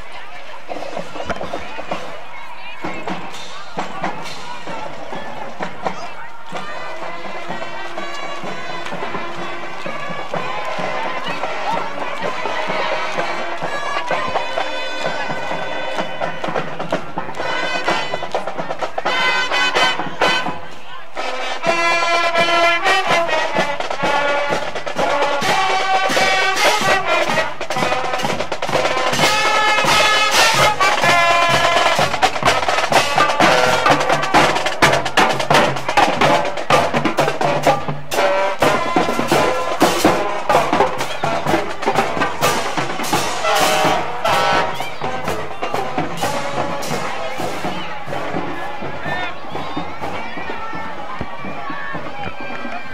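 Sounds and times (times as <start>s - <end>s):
marching band playing: 0.0s - 52.9s
drum strokes: 0.6s - 52.9s.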